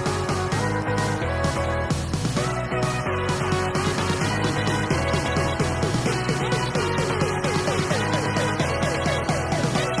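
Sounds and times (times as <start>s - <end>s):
rock music with guitar: 0.0s - 10.0s.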